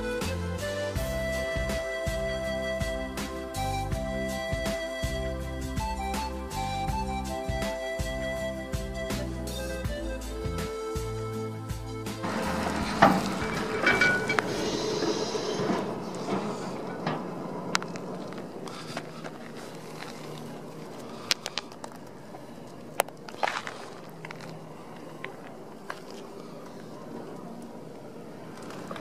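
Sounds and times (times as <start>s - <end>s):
wind-like rustling noise: 0.0s - 29.0s
clicks and scuffs from stones: 17.8s - 27.7s.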